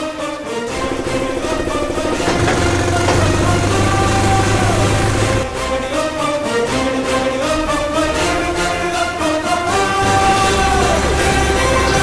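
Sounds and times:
film background music: 0.0s - 12.0s
vehicle engine revving: 1.1s - 5.4s.

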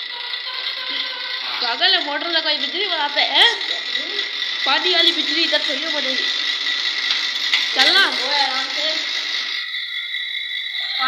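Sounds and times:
night insects chirring: 0.0s - 11.0s.

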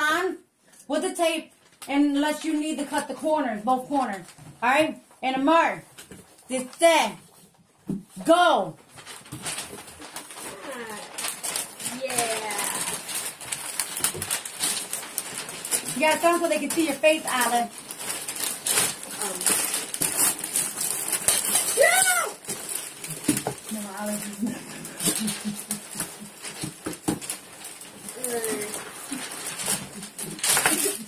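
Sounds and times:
wrapping paper rustling and crinkling: 0.7s - 31.0s.

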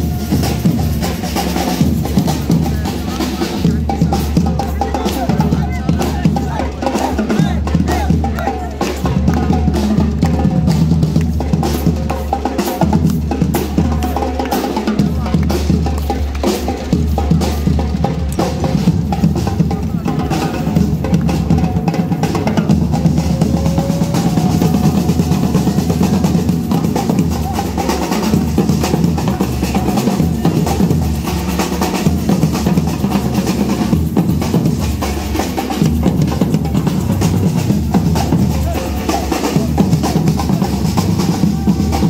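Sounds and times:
marching drummers drumming: 0.0s - 42.0s.

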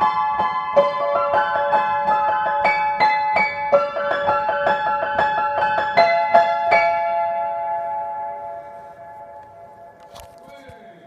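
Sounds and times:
piano notes ringing: 0.0s - 11.0s.

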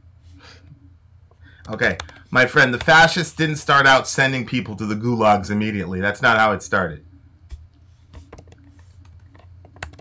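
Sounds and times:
low steady hum: 0.0s - 10.0s
keyboard typing clicks: 1.6s - 2.2s, 9.7s - 10.0s.

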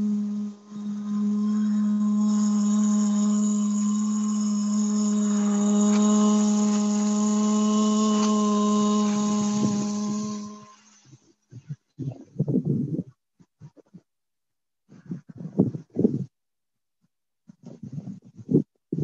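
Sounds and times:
woman humming low note: 0.0s - 10.8s.

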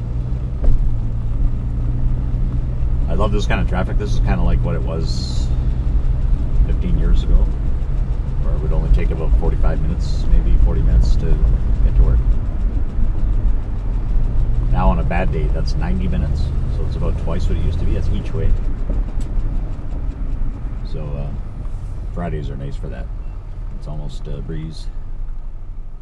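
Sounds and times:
car engine drone: 0.0s - 26.0s
road noise: 0.0s - 26.0s.

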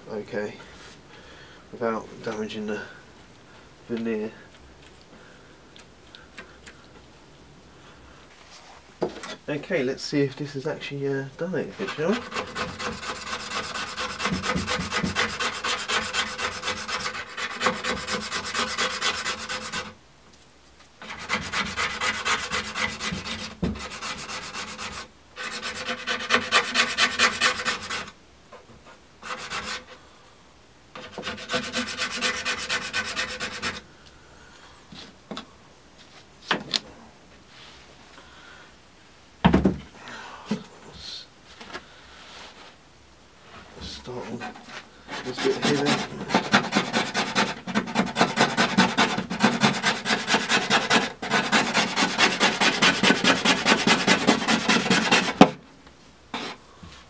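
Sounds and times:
metal scraper rasping on wood: 11.8s - 19.9s, 21.0s - 28.1s, 29.2s - 29.9s, 31.0s - 33.8s, 44.5s - 55.6s.

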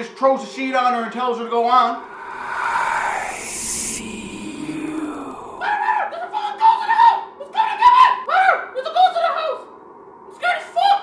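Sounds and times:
rushing hissing noise: 2.0s - 5.7s.

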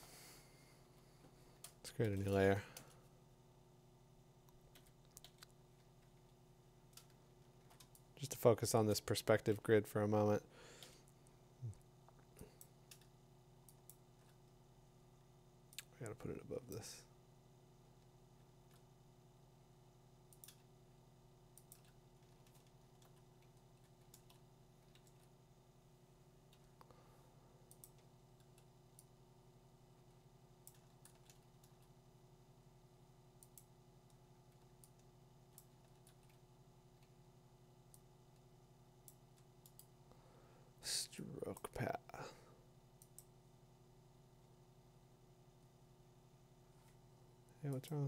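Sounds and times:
faint steady hum: 0.0s - 48.0s
computer mouse clicks: 4.4s - 6.2s, 6.9s - 8.1s, 12.5s - 14.4s, 20.3s - 20.7s, 21.5s - 25.3s, 27.6s - 29.1s, 30.6s - 31.9s, 33.4s - 36.4s, 37.9s - 39.9s, 43.0s - 43.3s.

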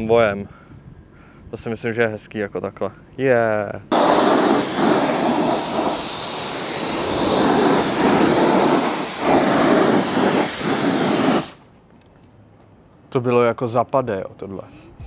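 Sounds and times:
pressure washer jet hissing: 3.9s - 11.6s.

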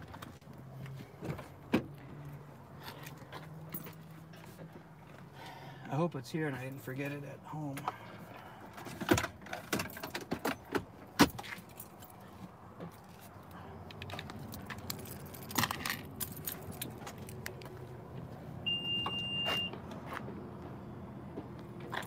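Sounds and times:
keys jangling: 14.0s - 17.4s
electronic beep: 18.7s - 19.7s.

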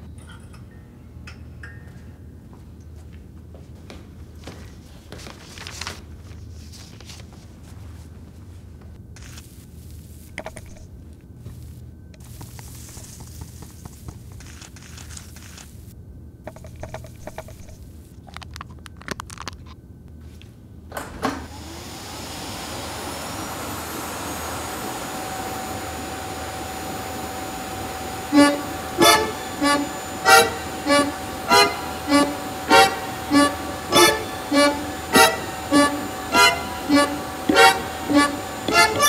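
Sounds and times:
small clicks and scrapes: 10.2s - 10.9s, 11.5s - 15.8s, 16.5s - 19.8s
vacuum cleaner motor whine: 20.9s - 39.0s
low hum: 23.2s - 39.0s.

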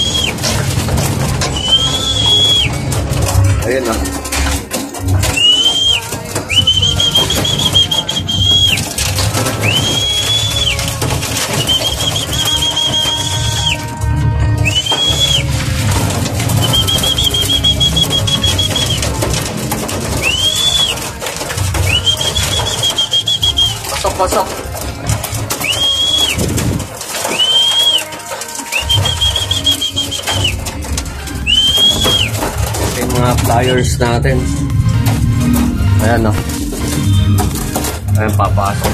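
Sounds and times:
high wavering whistle: 14.6s - 15.5s, 16.5s - 19.0s, 21.8s - 23.8s, 27.2s - 28.1s, 31.4s - 32.4s.

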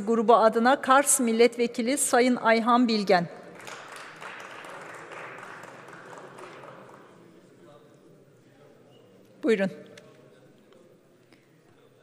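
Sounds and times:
scattered applause: 3.5s - 7.5s.

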